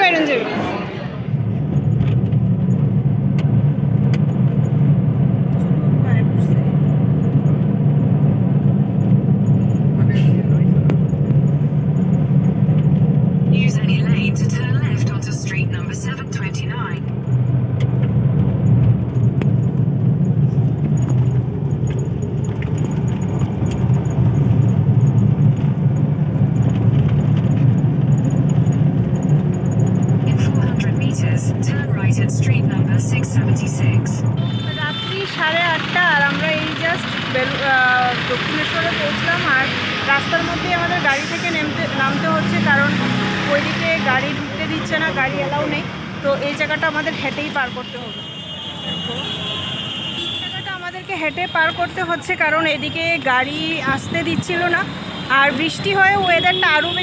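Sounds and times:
voices: 0.0 - 1.4, 13.5 - 17.2, 30.2 - 57.0
car engine and tyres drone: 0.0 - 48.4.

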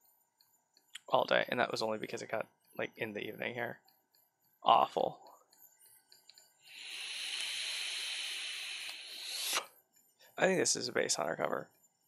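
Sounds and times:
hiss of air: 6.7 - 9.7.

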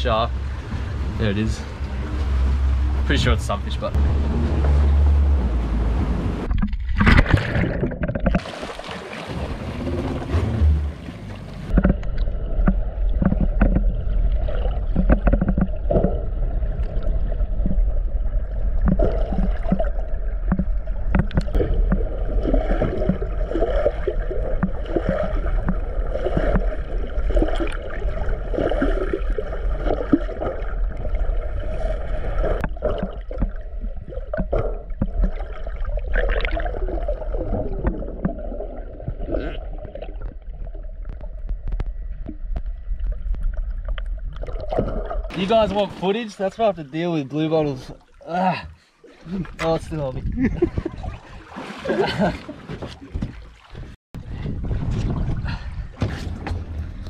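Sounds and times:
water gurgling and bubbling: 6.4 - 45.6, 50.2 - 52.5
underwater low rumble: 9.2 - 45.3, 53.2 - 57.0
water knocking on camera housing: 20.4 - 22.0.

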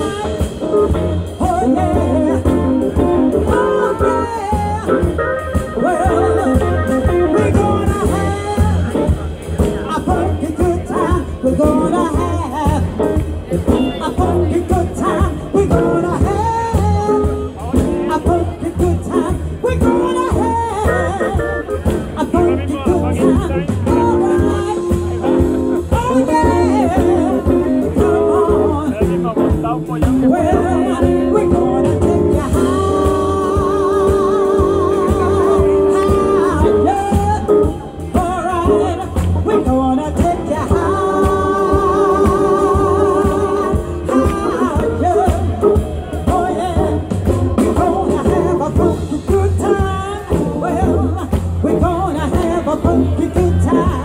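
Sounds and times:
drums: 0.0 - 54.0
electric guitar: 0.0 - 54.0
keyboard: 0.0 - 54.0
live soul band playing: 0.0 - 54.0
woman singing: 0.0 - 54.0.

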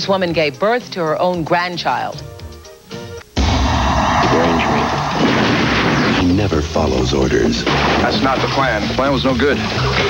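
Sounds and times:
continuous gunfire: 5.1 - 6.5.

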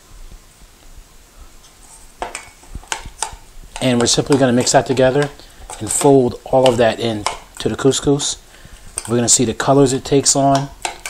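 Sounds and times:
metal utensil clinking on bowl: 2.3 - 7.7.

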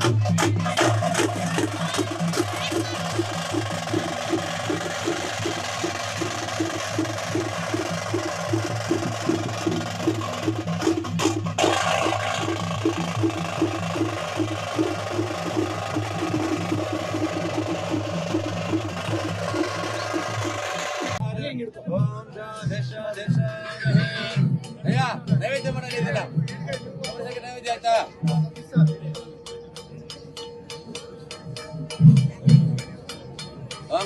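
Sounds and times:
drums beating fast rhythm: 0.0 - 34.0.

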